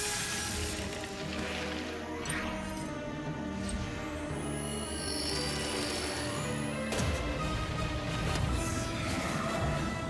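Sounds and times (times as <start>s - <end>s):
orchestral film score: 0.0s - 10.0s.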